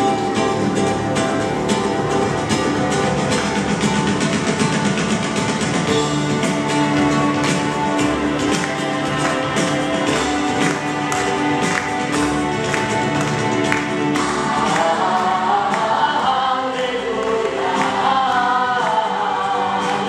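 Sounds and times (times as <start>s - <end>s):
musical accompaniment with steady beat: 0.0s - 20.0s
choir singing: 6.6s - 20.0s.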